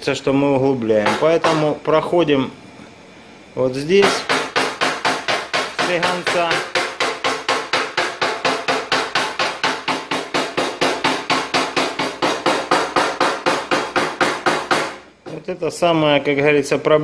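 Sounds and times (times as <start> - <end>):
hammer tapping punch on metal: 1.0 - 1.8, 4.0 - 15.4.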